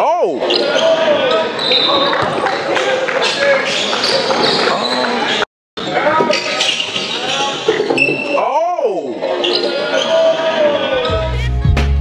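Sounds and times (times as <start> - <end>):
voices: 0.0 - 11.4.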